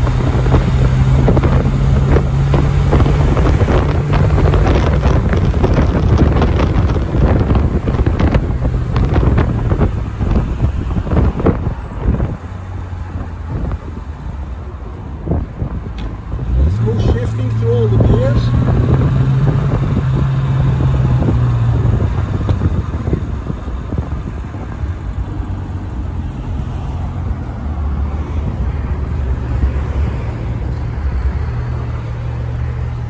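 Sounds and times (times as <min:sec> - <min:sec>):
wind buffeting microphone: 0:00.0 - 0:17.2, 0:17.8 - 0:33.0
car engine drone: 0:00.0 - 0:33.0
road noise: 0:00.0 - 0:33.0.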